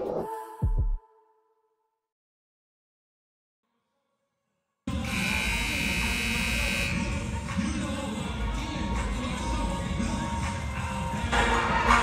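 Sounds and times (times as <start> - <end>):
gym buzzer horn: 4.9 - 7.3.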